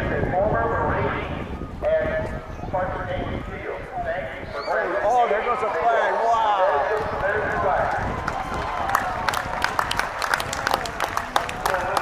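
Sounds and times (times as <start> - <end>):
announcement over loudspeaker: 0.0 - 8.1, 11.4 - 12.0.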